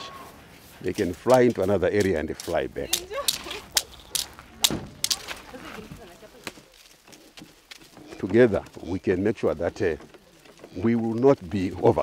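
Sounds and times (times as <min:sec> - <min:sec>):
sticks whipping onto gravel: 0:01.2 - 0:06.9.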